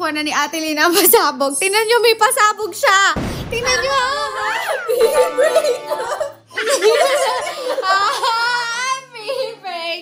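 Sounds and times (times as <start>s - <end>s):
women laughing: 4.1s - 9.5s.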